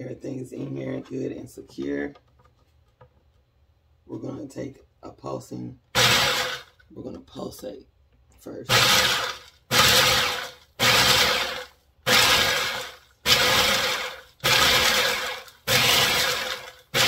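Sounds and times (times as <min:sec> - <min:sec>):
food processor chopping peppers: 0:05.9 - 0:06.7, 0:08.7 - 0:17.0.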